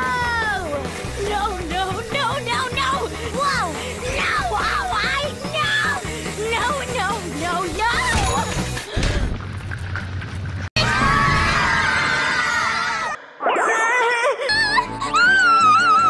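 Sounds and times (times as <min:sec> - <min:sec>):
cartoon music: 0:00.0 - 0:08.6.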